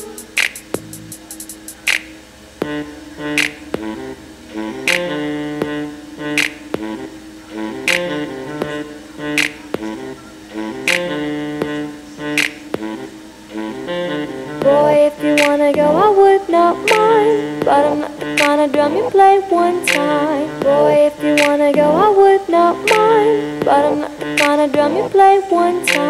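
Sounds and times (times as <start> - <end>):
pop music through small speaker: 0.0 - 26.0.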